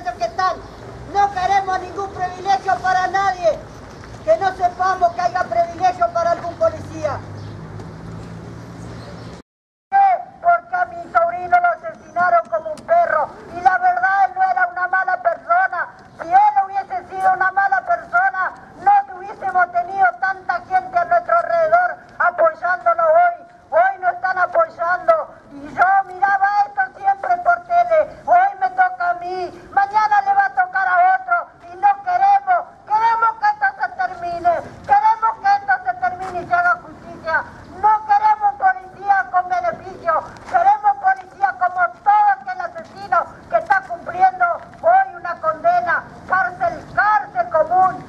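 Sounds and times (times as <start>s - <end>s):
person speaking through megaphone: 0.0s - 7.2s, 9.9s - 48.0s.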